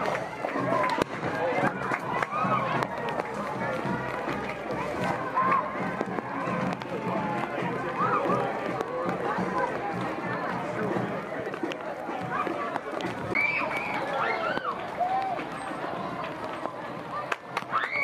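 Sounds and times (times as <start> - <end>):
crowd talking and calling out: 0.0 - 18.0.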